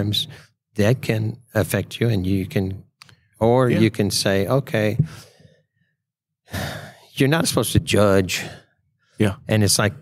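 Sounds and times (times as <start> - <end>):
man speaking: 3.4 - 5.1, 9.2 - 10.0.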